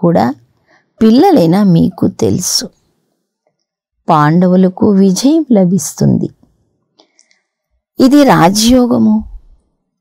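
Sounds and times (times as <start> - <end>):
woman reading aloud: 0.0 - 2.8, 4.1 - 6.4, 8.0 - 9.4.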